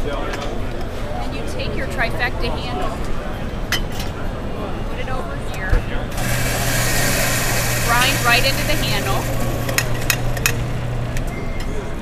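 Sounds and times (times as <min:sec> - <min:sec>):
coffee grinder grinding beans: 0:06.1 - 0:10.6.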